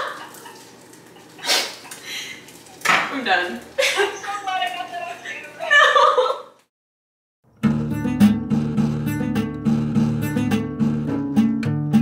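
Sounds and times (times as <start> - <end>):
egg sizzling in a frying pan: 0.0 - 4.2.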